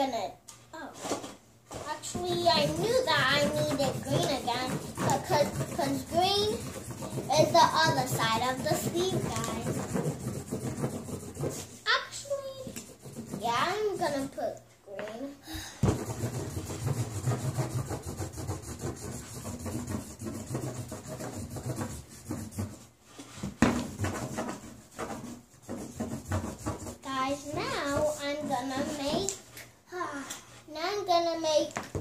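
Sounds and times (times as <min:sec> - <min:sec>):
young child's voice: 0:00.0 - 0:01.1, 0:01.8 - 0:10.0, 0:11.8 - 0:15.6, 0:26.9 - 0:32.0
markers scribbling on paper: 0:01.9 - 0:14.3, 0:15.9 - 0:22.9, 0:23.9 - 0:29.3.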